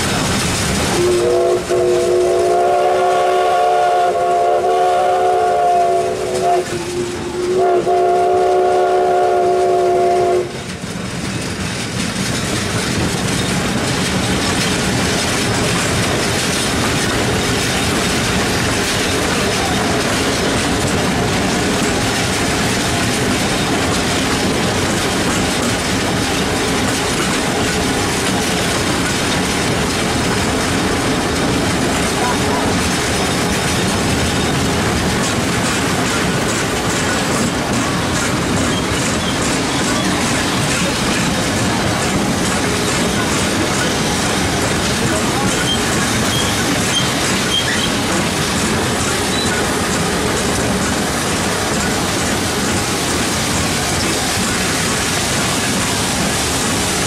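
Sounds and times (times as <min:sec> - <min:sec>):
steam whistle chord blasts: 0:01.0 - 0:10.5.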